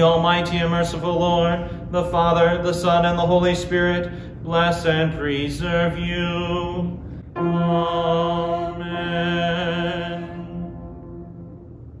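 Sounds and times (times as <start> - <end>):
man singing a held note: 4.1 - 11.7.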